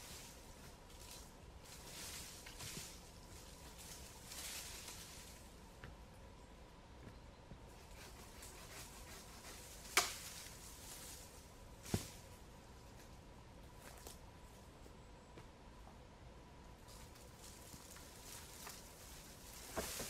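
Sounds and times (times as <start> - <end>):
branch cracking: 9.7 - 11.2, 16.9 - 20.0.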